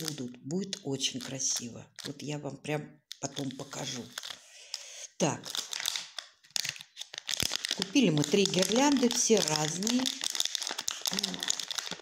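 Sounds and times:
paper and plastic rustling: 3.2s - 4.4s, 5.4s - 12.0s.

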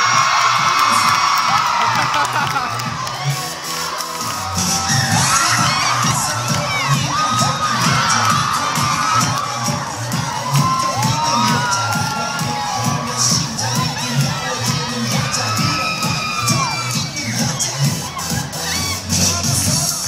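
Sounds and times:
crowd of women screaming: 0.0s - 19.6s
music with steady beat: 0.0s - 20.0s.

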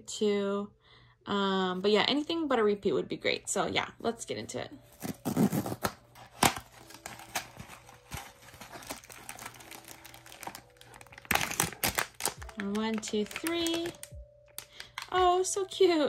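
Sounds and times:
cardboard flap rustling and scraping: 5.0s - 10.6s
plastic bag crinkling: 5.0s - 15.2s.

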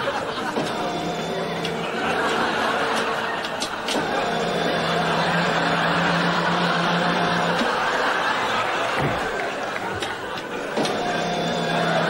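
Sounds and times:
dental chair motor humming: 0.0s - 12.0s.

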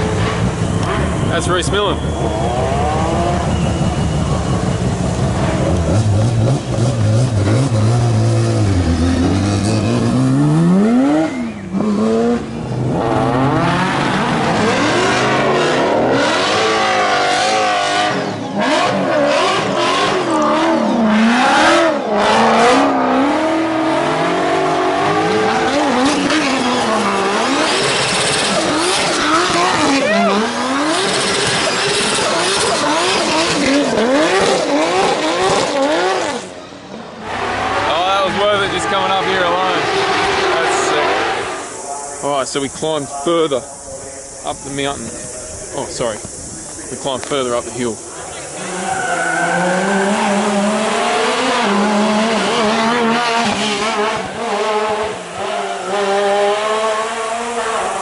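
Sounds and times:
tyre squeal: 0.0s - 6.8s, 8.6s - 12.0s, 24.5s - 36.5s, 48.2s - 50.9s
car engine revving hard: 0.0s - 41.8s, 48.0s - 58.0s
race car engines at full throttle: 0.0s - 58.0s.

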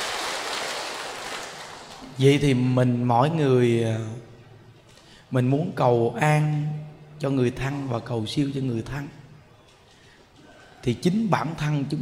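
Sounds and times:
audience applauding: 0.0s - 2.1s.

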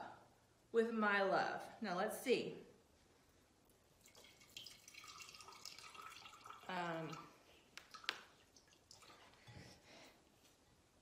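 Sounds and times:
water trickling and dripping: 4.0s - 9.6s.

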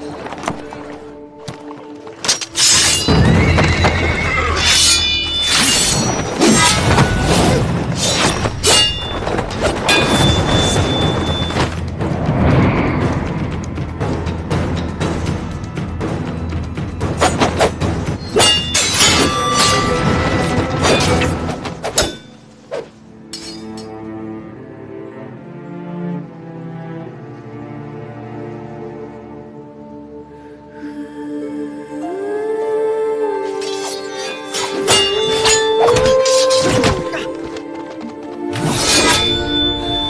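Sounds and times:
dramatic score music: 0.0s - 40.0s
horse neighing and whinnying: 3.1s - 5.0s.

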